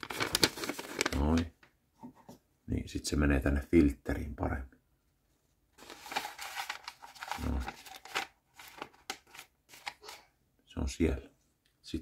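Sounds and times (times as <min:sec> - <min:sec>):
paper filter rustling and crinkling: 0:00.0 - 0:01.6, 0:05.8 - 0:10.3.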